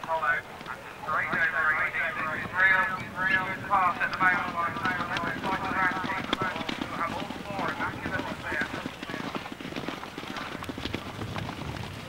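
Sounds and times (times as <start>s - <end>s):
horse galloping on grass: 0.0s - 12.0s.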